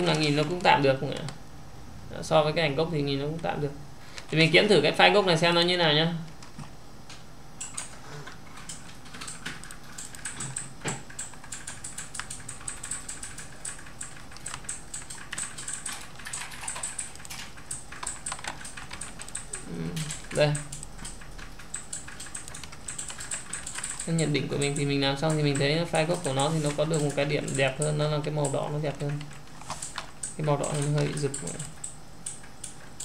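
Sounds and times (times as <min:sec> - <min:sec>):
computer keyboard typing: 0:07.6 - 0:33.0.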